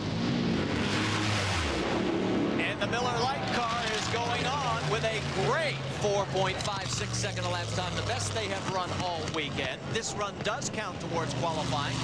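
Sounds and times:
dragster engines roaring: 0.0 - 12.0.

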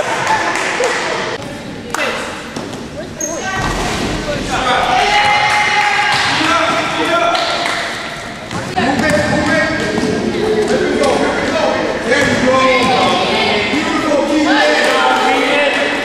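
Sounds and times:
shouts and chatter echoing: 0.0 - 16.0.

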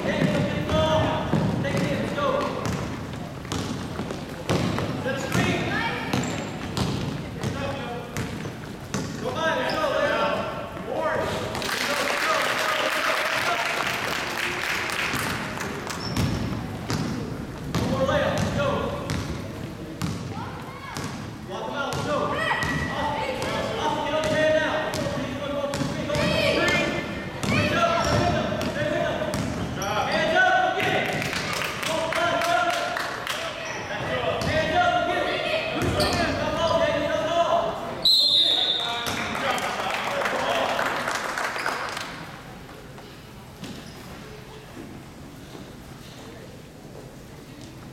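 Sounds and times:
crowd noise: 0.0 - 47.9
basketball bouncing on wooden floor: 0.2 - 7.6, 16.0 - 19.4.

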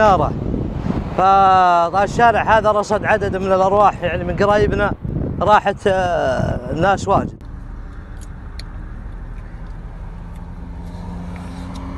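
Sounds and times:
traffic rumble: 0.0 - 11.9
faint low engine hum: 6.1 - 11.9.

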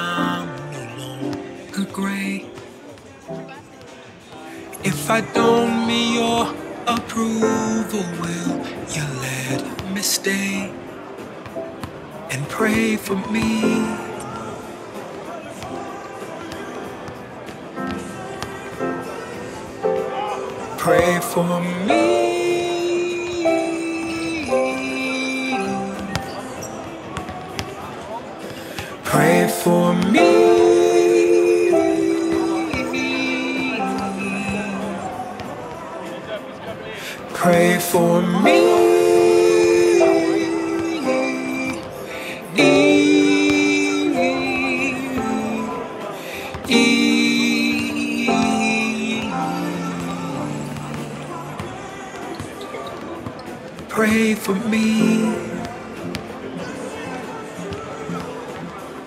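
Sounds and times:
gospel song: 4.6 - 10.8, 12.3 - 14.7, 18.0 - 26.2, 28.6 - 35.4, 37.0 - 52.3, 53.9 - 55.8.

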